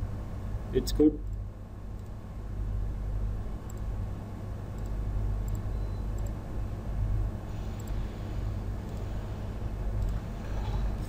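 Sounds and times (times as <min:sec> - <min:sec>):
electrical hum and hiss: 0:00.0 - 0:11.0
faint clicks: 0:04.8 - 0:06.4.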